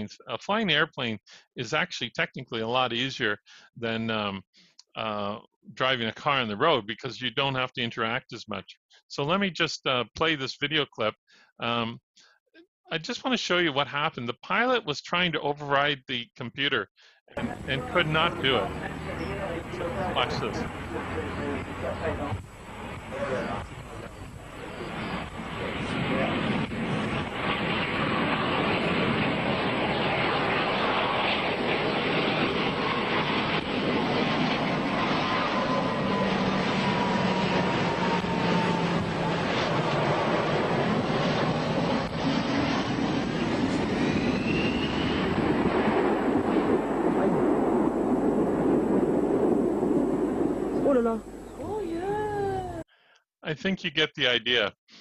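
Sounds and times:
jet airliner engines passing: 17.4 - 52.8.

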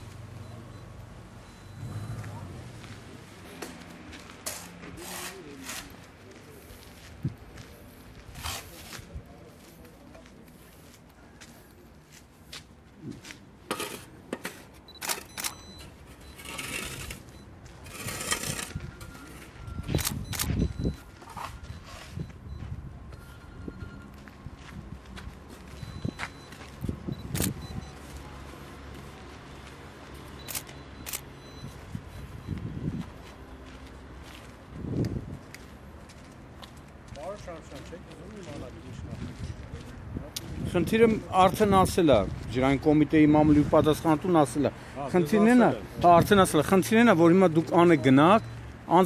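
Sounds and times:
low outdoor background: 0.0 - 49.0
shovel scraping soil and gravel: 4.4 - 6.0, 13.7 - 15.3, 16.2 - 19.5.

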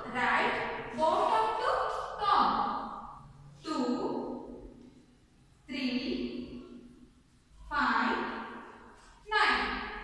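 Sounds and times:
woman speaking: 0.0 - 3.0, 3.6 - 4.3, 5.7 - 6.6, 7.7 - 8.4, 9.3 - 10.0.

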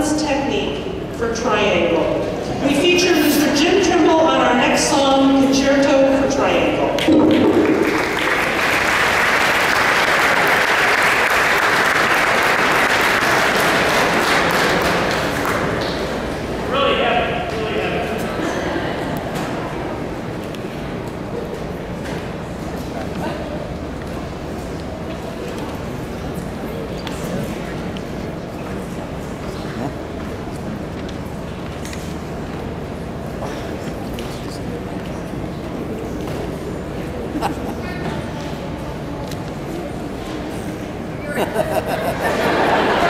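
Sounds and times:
murmur of crowd chatter: 0.0 - 11.0, 11.8 - 43.0
audience applauding: 7.4 - 16.1.

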